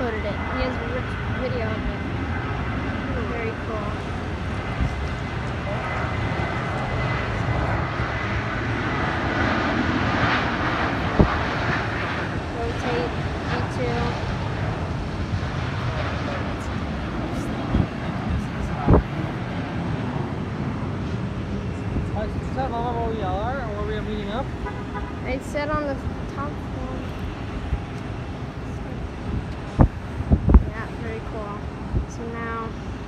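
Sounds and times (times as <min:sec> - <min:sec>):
distant jet engine rumble: 0:00.0 - 0:33.0.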